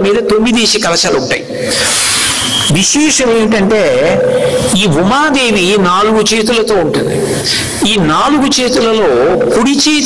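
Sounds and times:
man speaking into a microphone: 0:00.0 - 0:01.9, 0:02.7 - 0:10.0
drawn-out hissing sibilant: 0:01.5 - 0:05.1, 0:07.0 - 0:09.5.

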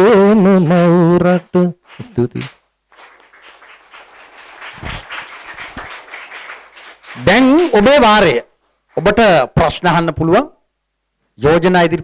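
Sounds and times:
audience clapping: 0:01.3 - 0:09.1.

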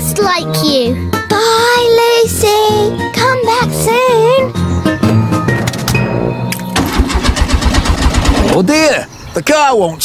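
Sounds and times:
car engine cranking on starter: 0:06.8 - 0:08.6.

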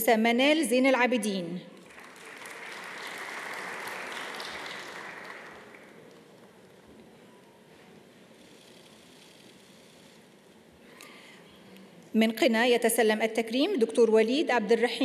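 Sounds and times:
faint hall noise: 0:00.0 - 0:15.0
audience applauding: 0:01.8 - 0:06.4.

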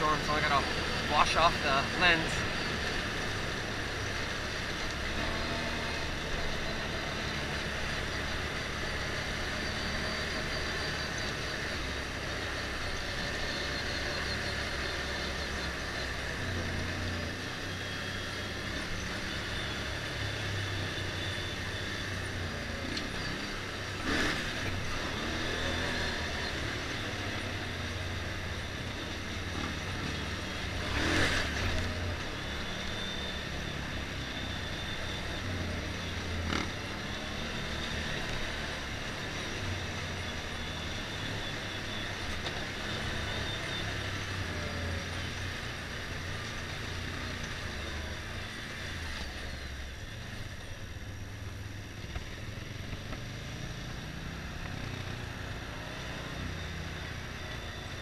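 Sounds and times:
motorcycle engine cruising: 0:00.0 - 0:58.0
wind and road noise: 0:00.0 - 0:58.0.

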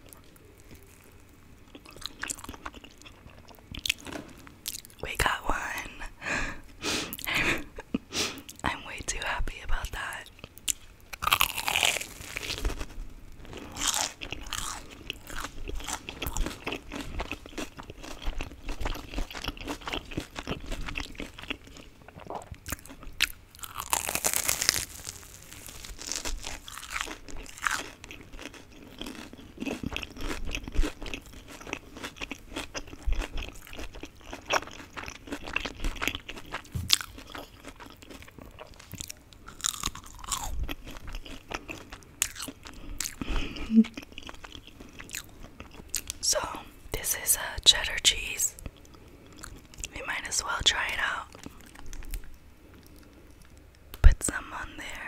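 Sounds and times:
crunchy bites and chewing: 0:00.0 - 0:05.0, 0:10.4 - 0:46.2, 0:48.6 - 0:50.0, 0:51.0 - 0:53.8.

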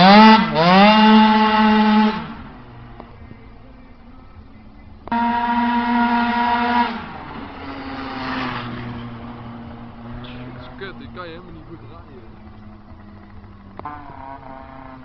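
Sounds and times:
scooter engine at high revs: 0:00.0 - 0:03.1, 0:05.0 - 0:15.0.

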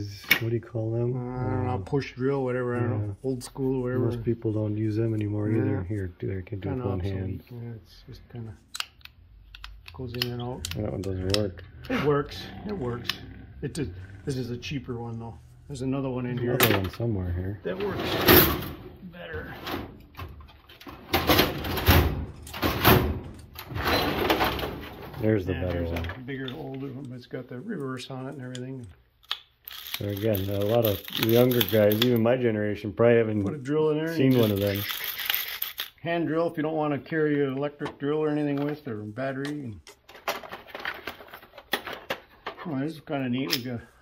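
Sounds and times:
metal tools clicking and rattling: 0:34.2 - 0:36.0.

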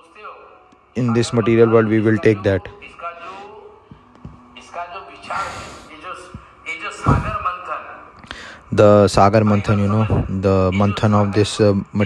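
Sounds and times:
faint man's voice: 0:00.0 - 0:03.9, 0:04.5 - 0:08.1, 0:08.7 - 0:12.0
soft low thumps: 0:03.9 - 0:04.5.

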